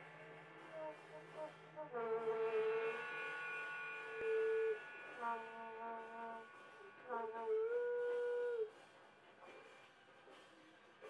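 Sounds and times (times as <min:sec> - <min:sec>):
band playing droning music: 0:00.0 - 0:08.8.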